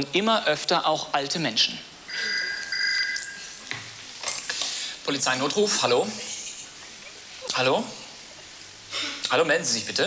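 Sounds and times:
electronic telephone ring: 2.1s - 3.6s.

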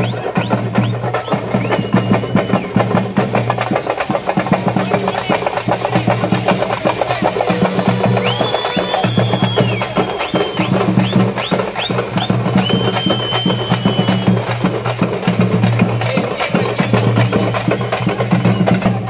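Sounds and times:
shrill whistle blasts: 0.0s - 3.0s, 7.6s - 14.8s
fast dense drumming: 0.0s - 19.0s.

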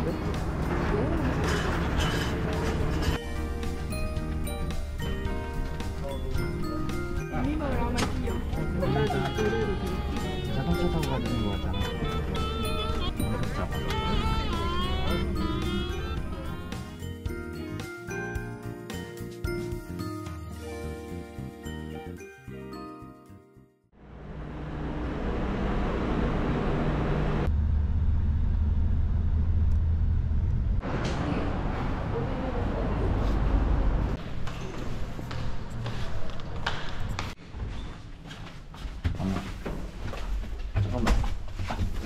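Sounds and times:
moving vehicle rumble: 0.0s - 4.2s, 24.0s - 37.4s
street sounds: 0.0s - 18.3s, 29.9s - 38.7s
light chiming music: 3.2s - 23.9s.

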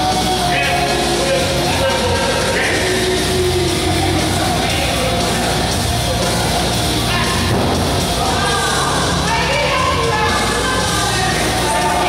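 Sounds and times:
loud heavy rock music: 0.0s - 12.0s.

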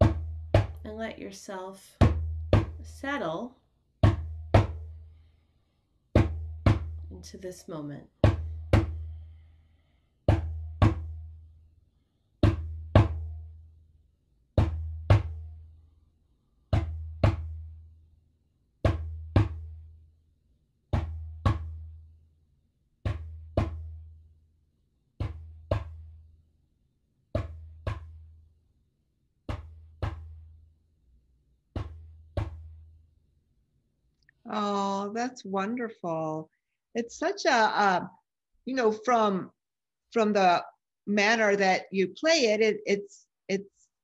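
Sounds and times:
djembe strokes booming: 8.2s - 9.2s.

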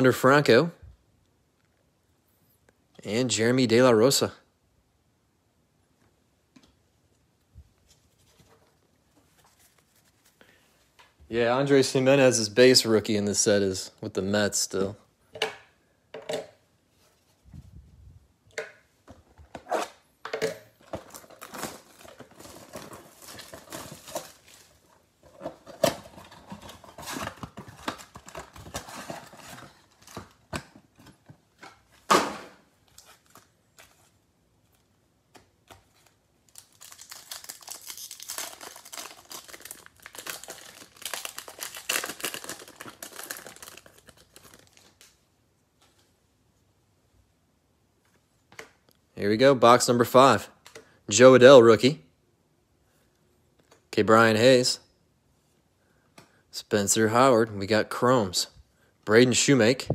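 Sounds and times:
wrapper ripping open: 36.0s - 45.2s.

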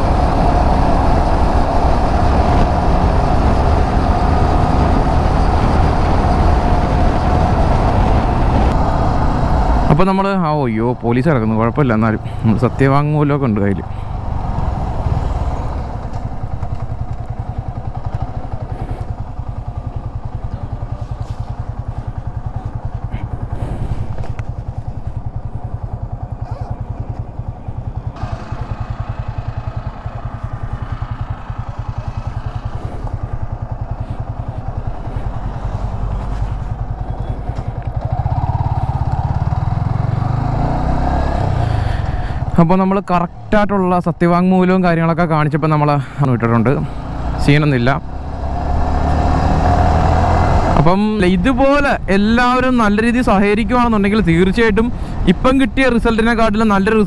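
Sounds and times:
motorcycle engine idling: 0.1s - 42.7s, 50.0s - 57.0s.

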